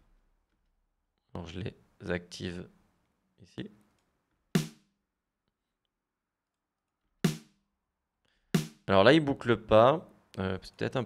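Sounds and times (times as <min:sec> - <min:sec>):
drum machine kick hit: 0:04.6 - 0:04.8, 0:07.3 - 0:07.5, 0:08.6 - 0:08.9.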